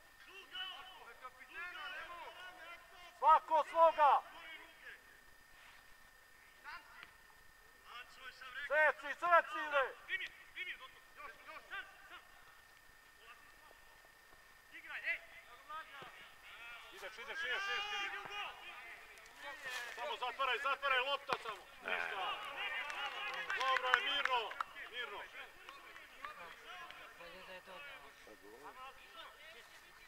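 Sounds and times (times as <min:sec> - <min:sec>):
distant players shouting: 0:00.2 - 0:05.1, 0:14.8 - 0:27.8.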